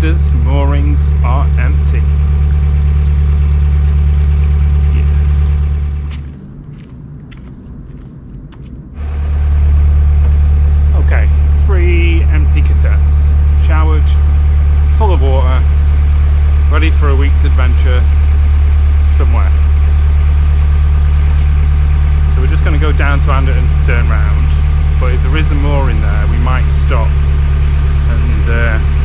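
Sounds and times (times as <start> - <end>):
diesel engine droning: 0.0 - 29.0.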